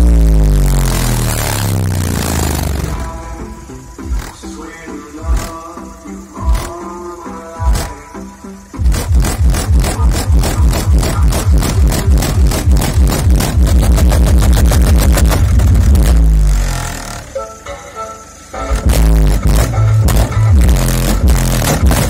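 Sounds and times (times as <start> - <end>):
loud electronic music with heavy bass: 0.0 - 22.0.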